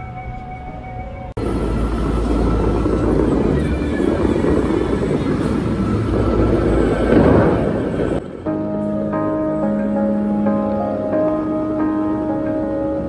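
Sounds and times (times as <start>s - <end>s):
fountain water jets rushing: 1.4s - 8.2s.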